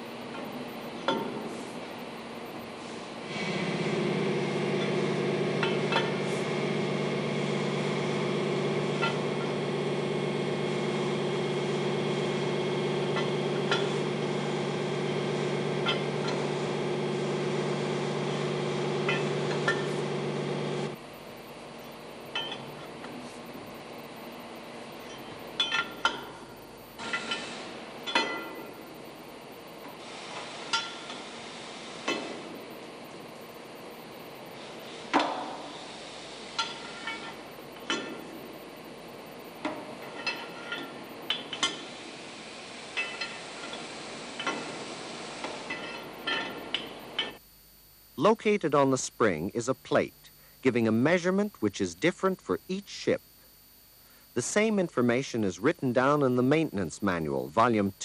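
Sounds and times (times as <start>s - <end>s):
machine hum: 0.0s - 58.0s
room noise: 0.0s - 58.0s
spanner clinking on metal nuts: 25.1s - 26.3s.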